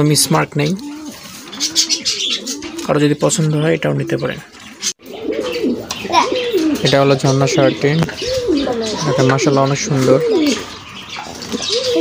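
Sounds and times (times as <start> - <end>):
pigeons cooing: 0.0 - 12.0
man's voice: 9.0 - 10.6.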